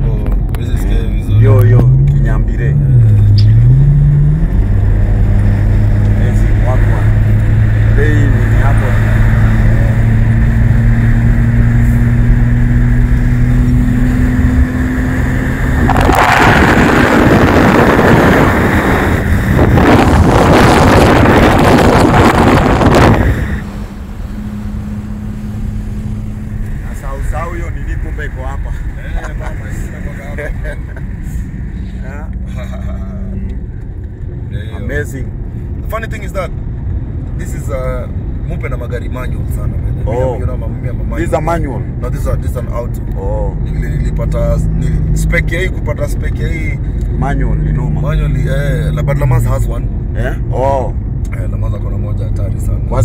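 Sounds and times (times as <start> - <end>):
car engine drone: 0.0 - 53.0
wind and road noise rushing: 0.0 - 53.0
tyre drone: 1.2 - 33.9.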